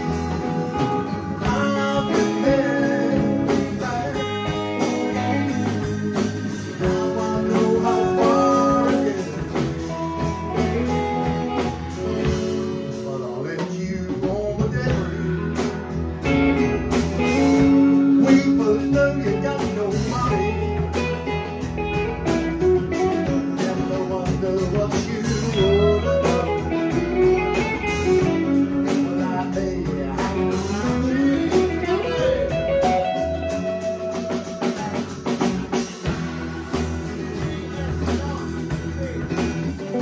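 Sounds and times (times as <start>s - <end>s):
live band playing instrumental: 0.0s - 40.0s
sliding bending guitar lead: 0.0s - 40.0s.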